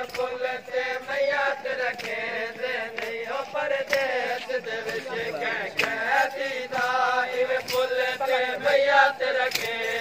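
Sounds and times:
men chanting a mourning refrain: 0:00.0 - 0:10.0.

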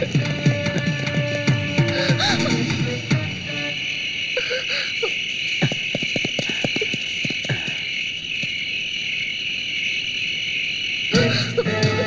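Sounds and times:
crickets chirring: 0:00.0 - 0:12.0.

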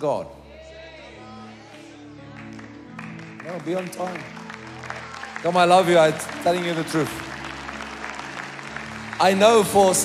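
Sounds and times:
congregation applauding: 0:01.2 - 0:10.0.

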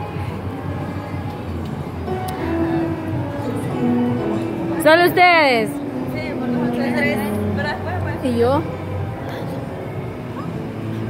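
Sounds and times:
faint background music: 0:00.0 - 0:11.0
indoor amusement park din: 0:00.0 - 0:11.0.

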